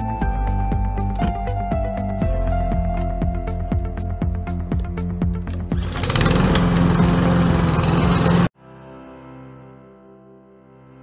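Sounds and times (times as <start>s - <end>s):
lawn mower engine running: 5.0s - 8.5s.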